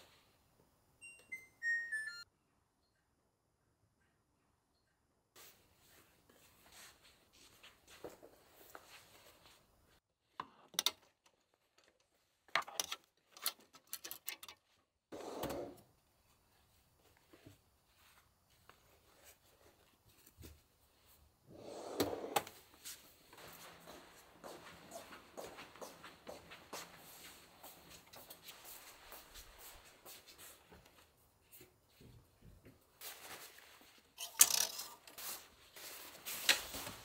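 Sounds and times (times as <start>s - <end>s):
dresser drawer sliding: 15.1s - 15.8s, 21.5s - 22.6s
fabric rustling: 22.6s - 31.1s, 33.0s - 34.2s, 35.0s - 37.0s.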